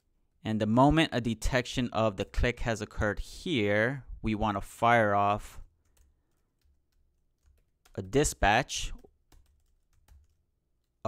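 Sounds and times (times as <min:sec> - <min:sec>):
keyboard typing: 0:05.8 - 0:11.0.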